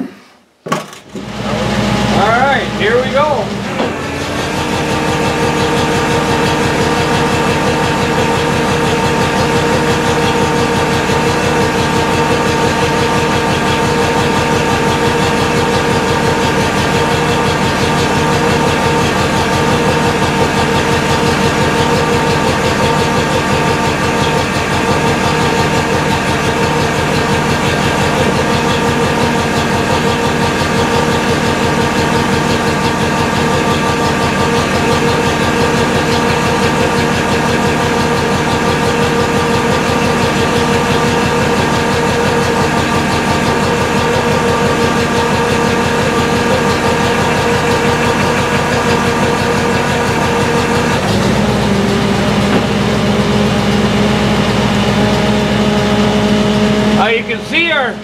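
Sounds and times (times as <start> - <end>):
truck engine running: 1.0 - 58.0
winch whine: 1.0 - 58.0.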